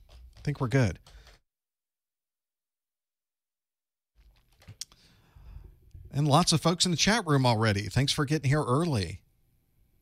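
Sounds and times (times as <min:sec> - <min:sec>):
keyboard typing: 0:00.0 - 0:01.4.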